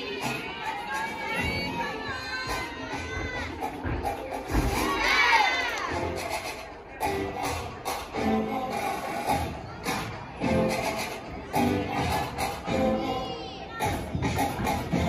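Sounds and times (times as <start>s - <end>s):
spectators shouting and cheering: 0.0s - 8.0s
music playing: 0.0s - 15.0s.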